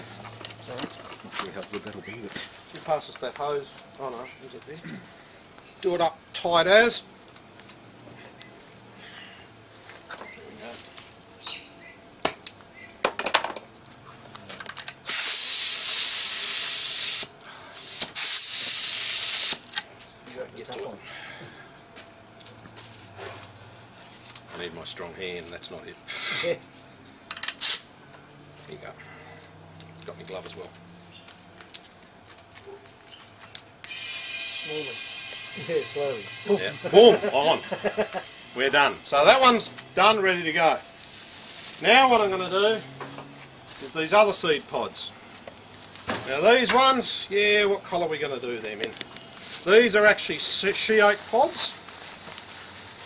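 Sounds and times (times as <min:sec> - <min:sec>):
compressed air hissing: 0:15.0 - 0:19.6, 0:26.1 - 0:26.6, 0:27.6 - 0:27.9, 0:33.9 - 0:43.0.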